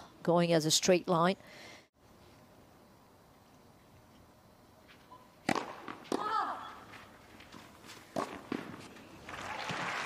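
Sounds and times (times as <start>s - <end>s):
tennis racket hitting ball: 5.4s - 6.6s, 8.1s - 8.9s.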